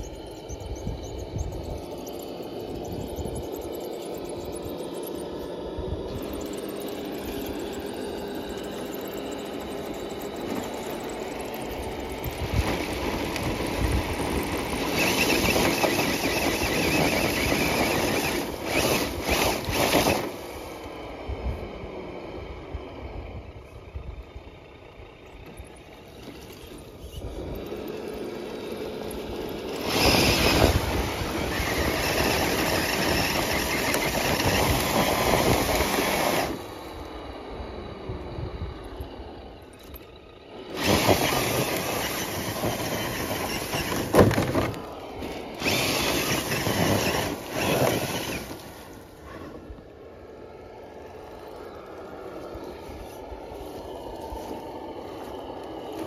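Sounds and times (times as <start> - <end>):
toy car electric motor whining: 0.0 - 21.2, 25.2 - 37.3, 38.8 - 56.0.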